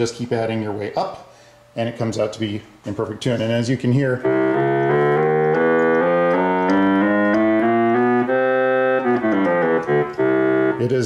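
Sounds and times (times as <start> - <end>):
reedy monophonic keyboard notes: 3.9 - 11.0.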